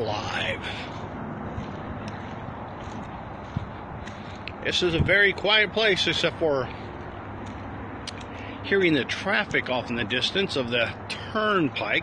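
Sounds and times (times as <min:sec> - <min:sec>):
distant highway traffic: 0:00.0 - 0:12.0.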